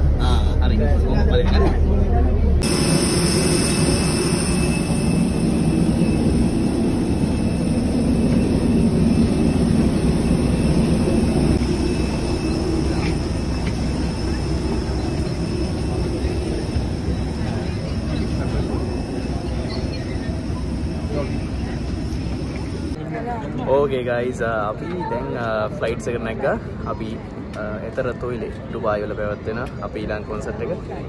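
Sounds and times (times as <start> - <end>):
jet engine rumble and whine: 0.0 - 31.0.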